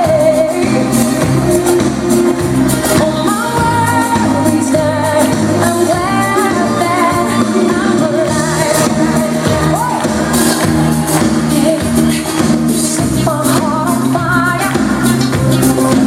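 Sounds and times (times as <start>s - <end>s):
pop song on stage speakers: 0.0s - 16.0s.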